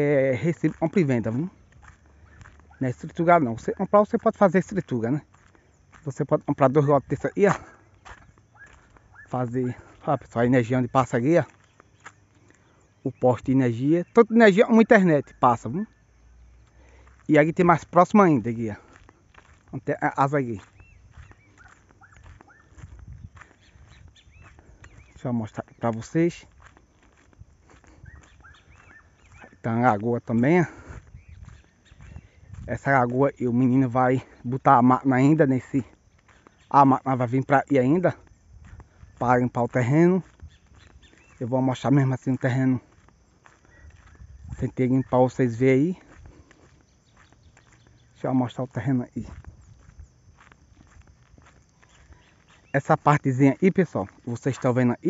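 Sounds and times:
footsteps on dirt road: 0:00.0 - 0:55.0
outdoor background noise: 0:00.0 - 0:55.0.

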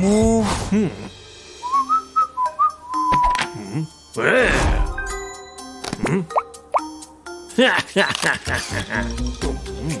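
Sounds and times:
person whistling a tune: 0:01.6 - 0:03.3.

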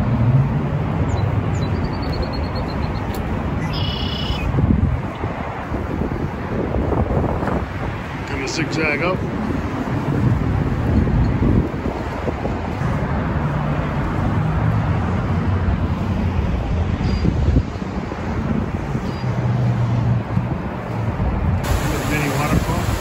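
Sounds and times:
wind buffeting microphone: 0:04.4 - 0:23.0
river water rushing: 0:21.6 - 0:23.0.

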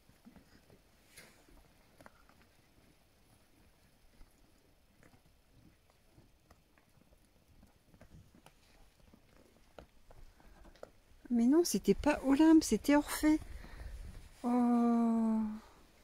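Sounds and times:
donkey hoof steps: 0:00.0 - 0:14.4.

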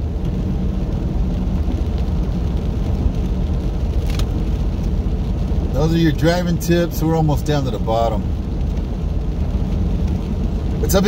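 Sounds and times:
in-cabin engine drone: 0:00.0 - 0:11.0
tyre noise on wet road: 0:00.0 - 0:11.0.

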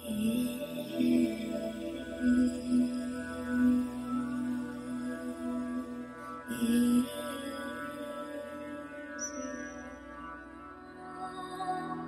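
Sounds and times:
chant-like mantra tone: 0:00.0 - 0:12.0
sustained drone: 0:00.0 - 0:12.0.

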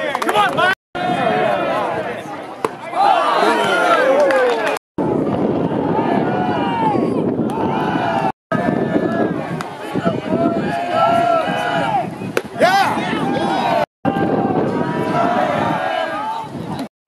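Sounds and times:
crowd shouting: 0:00.0 - 0:16.8.

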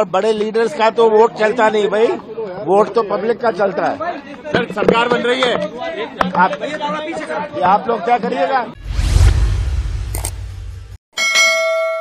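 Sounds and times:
low rumble: 0:08.8 - 0:11.0
bell chime: 0:11.2 - 0:12.0.

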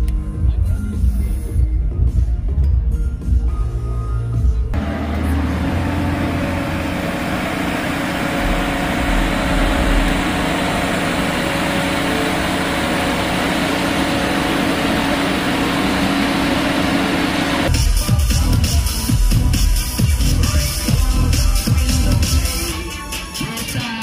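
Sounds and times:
truck engine and hydraulics droning: 0:03.9 - 0:17.8
constant hum: 0:04.8 - 0:17.7.

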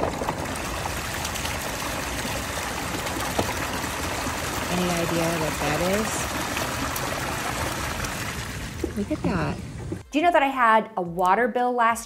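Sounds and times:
water falling over rocks: 0:00.0 - 0:10.0.

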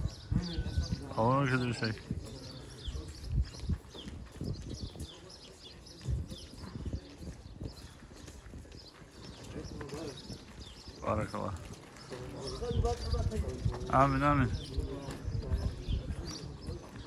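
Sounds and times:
faint voices: 0:00.0 - 0:17.0
footsteps on gravel: 0:00.6 - 0:17.0.

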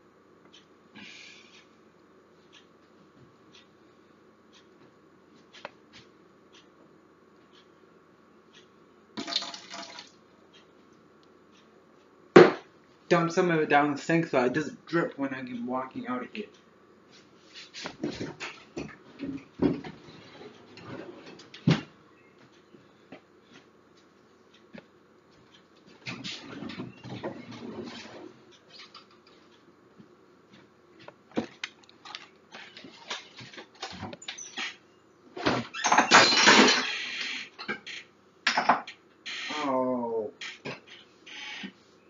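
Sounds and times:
knocks and clatter of kitchen items: 0:18.0 - 0:20.0, 0:35.4 - 0:36.9, 0:38.5 - 0:38.9.

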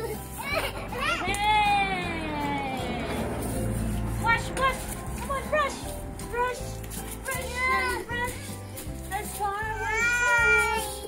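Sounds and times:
background music with steady beat: 0:00.0 - 0:11.0
high gliding melody: 0:00.9 - 0:08.7.

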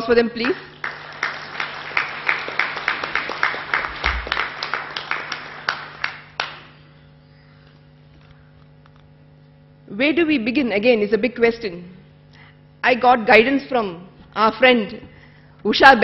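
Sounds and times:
low electrical hum: 0:00.0 - 0:16.0
audience applauding: 0:00.4 - 0:06.8.

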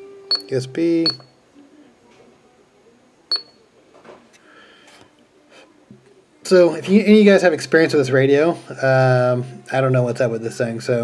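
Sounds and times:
short high key beeps: 0:00.3 - 0:01.3, 0:03.3 - 0:03.6.

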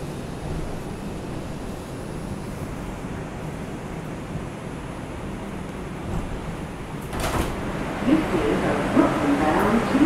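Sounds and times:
stopped train hum: 0:00.0 - 0:10.0
automated announcement voice: 0:08.0 - 0:10.0.

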